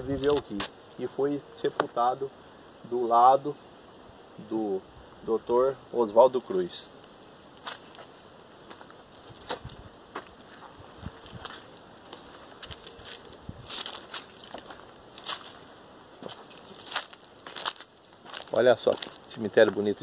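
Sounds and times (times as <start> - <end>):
footsteps crunching on dry leaves: 0.0 - 0.8, 6.9 - 20.0.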